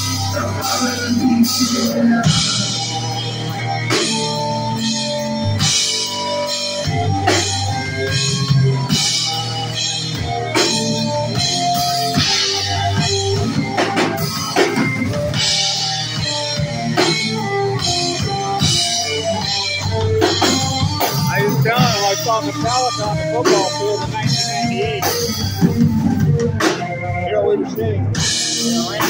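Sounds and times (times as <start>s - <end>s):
live rock band playing: 0.0s - 29.0s.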